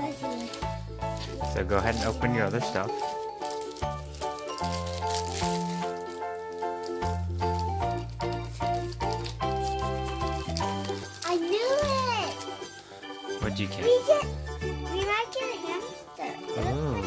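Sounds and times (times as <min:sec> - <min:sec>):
instrumental music: 0:00.0 - 0:17.0.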